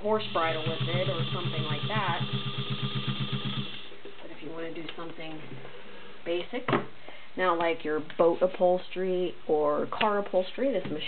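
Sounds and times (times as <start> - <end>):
sewing machine stitching: 0.1 - 3.9.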